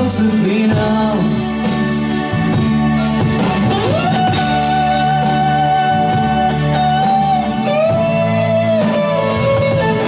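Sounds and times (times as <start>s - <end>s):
electric guitar lead note: 1.2s - 10.0s.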